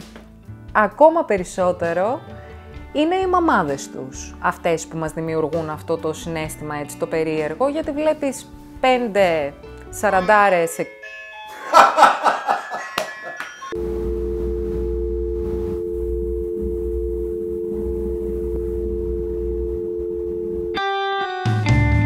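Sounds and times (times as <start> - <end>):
two-note electronic tone: 13.7 - 20.8
low hum: 13.8 - 20.8.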